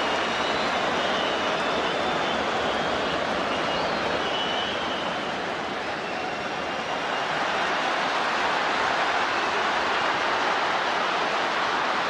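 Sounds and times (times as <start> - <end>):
faint high whistles: 0.0 - 7.3
stadium crowd noise: 0.0 - 12.0.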